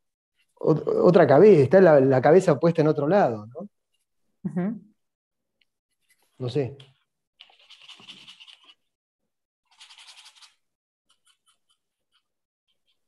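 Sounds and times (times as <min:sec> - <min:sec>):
paintbrush scrubbing on canvas: 0:05.9 - 0:06.4, 0:07.4 - 0:09.0, 0:09.6 - 0:13.0
scratchy brush dabs: 0:07.4 - 0:09.0.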